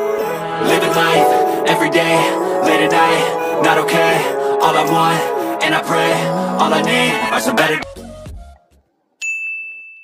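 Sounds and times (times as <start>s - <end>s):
music track: 0.0s - 8.7s
high bell-like ding: 9.2s - 10.0s.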